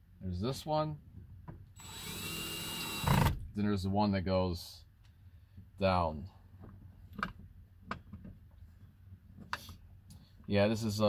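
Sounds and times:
drill bit clicking on screw: 0:01.8 - 0:03.3.

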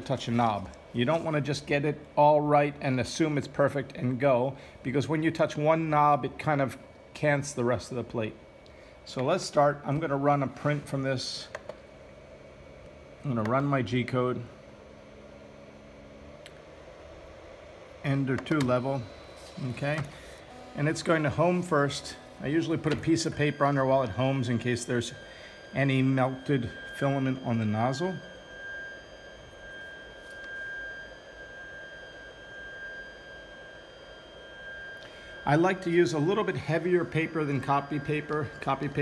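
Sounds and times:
cooling fans hum and hiss: 0:00.0 - 0:39.0
three d printer motor whine: 0:00.0 - 0:39.0.

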